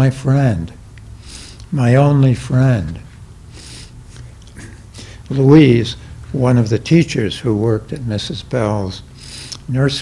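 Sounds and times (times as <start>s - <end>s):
person speaking: 0.0s - 0.8s, 1.6s - 3.8s, 4.5s - 10.0s
low steady hum: 0.0s - 10.0s
soft breath: 4.6s - 5.3s.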